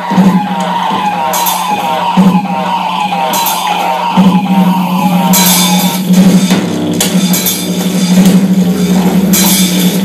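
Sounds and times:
falling pitched tones: 0:00.0 - 0:06.4.

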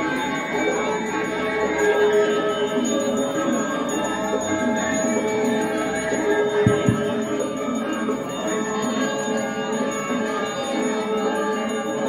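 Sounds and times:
gamelan dance music: 0:06.4 - 0:08.2.

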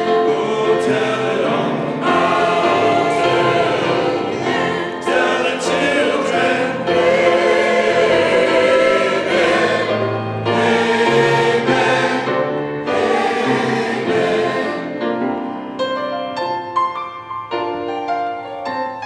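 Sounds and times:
mixed choir singing: 0:00.0 - 0:15.5.

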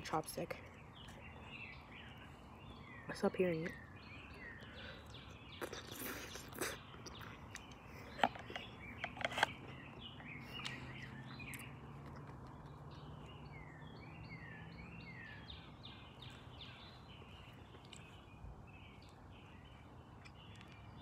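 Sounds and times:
birds chirping: 0:00.0 - 0:21.0.

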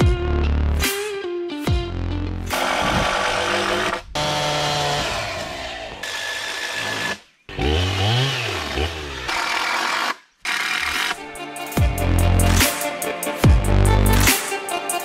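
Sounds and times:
chainsaw engine revving: 0:02.5 - 0:11.2.

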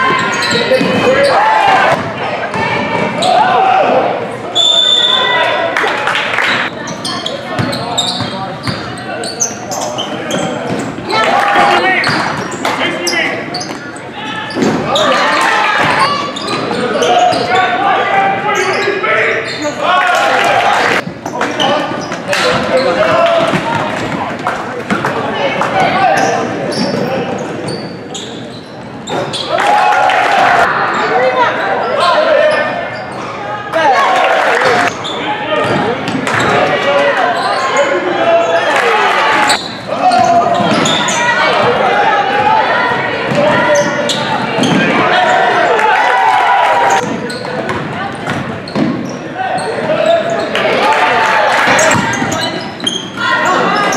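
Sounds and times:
sneakers squeaking: 0:00.0 - 0:03.6, 0:06.6 - 0:29.7, 0:31.0 - 0:33.4, 0:34.6 - 0:46.2, 0:46.8 - 0:53.9
spectators shouting: 0:00.0 - 0:04.3, 0:36.4 - 0:47.0
voices calling out: 0:00.0 - 0:53.9.

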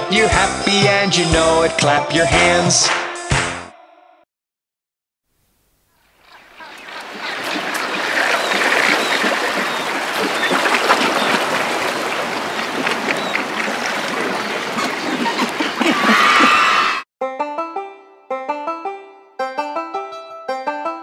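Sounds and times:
lapping water: 0:06.3 - 0:16.8
plucked-string melody: 0:17.2 - 0:21.0.

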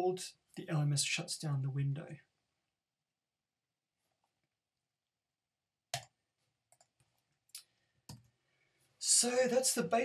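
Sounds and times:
computer mouse clicks: 0:05.9 - 0:08.3.

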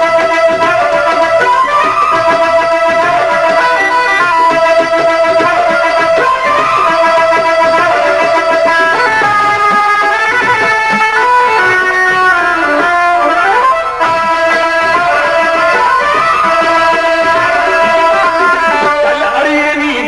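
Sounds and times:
percussion: 0:00.0 - 0:20.0
plucked string melody: 0:00.0 - 0:20.0.

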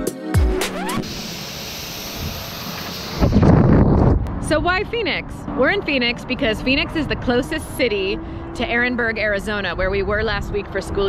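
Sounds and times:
music with a beat: 0:00.0 - 0:01.0
high-pressure spray wand hissing: 0:00.9 - 0:03.6.

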